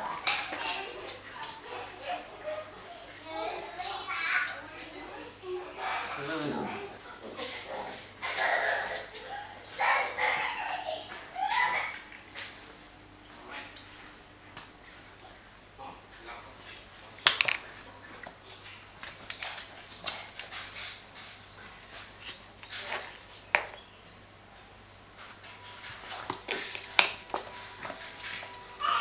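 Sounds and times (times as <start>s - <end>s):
puppies vocalising while play-fighting: 5.6s - 12.4s.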